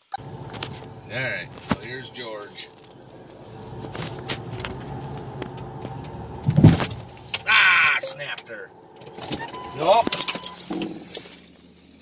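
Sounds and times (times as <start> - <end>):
vehicle engine humming: 0.0 - 12.0
heavy thump: 2.7 - 7.5.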